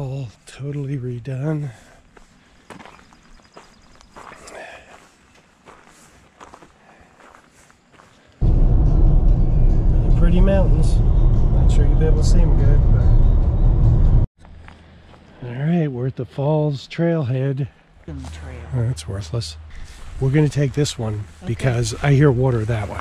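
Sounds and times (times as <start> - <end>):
faint outdoor sounds: 0.0 - 13.8, 14.4 - 23.0
car road and engine rumble: 8.4 - 15.3.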